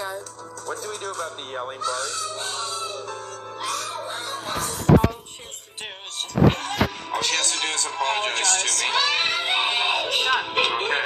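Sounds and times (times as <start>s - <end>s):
background music: 0.0s - 11.0s
toddler girl wailing: 1.8s - 4.6s.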